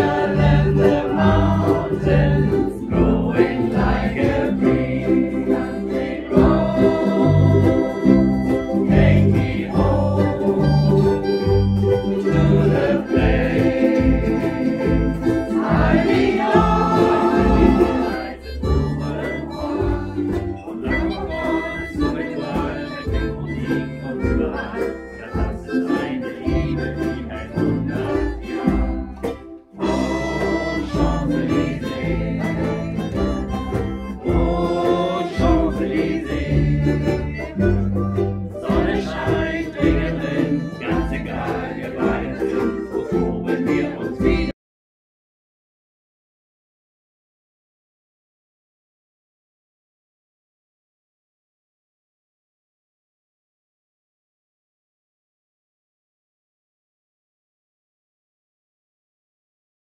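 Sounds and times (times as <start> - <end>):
low bass notes: 0.0 - 44.5
group of voices singing: 0.0 - 44.6
ukuleles strummed together: 0.0 - 44.6.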